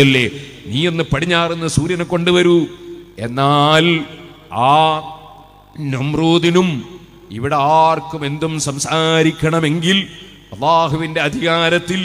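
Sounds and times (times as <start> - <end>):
man preaching in sing-song voice: 0.0 - 12.0.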